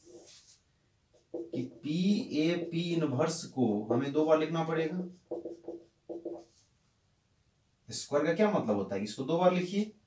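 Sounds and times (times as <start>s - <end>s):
marker squeaking on whiteboard: 1.2s - 3.0s, 5.1s - 6.7s.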